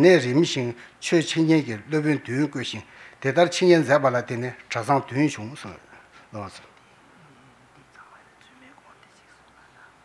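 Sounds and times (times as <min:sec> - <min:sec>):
men whispering: 0:05.4 - 0:10.0.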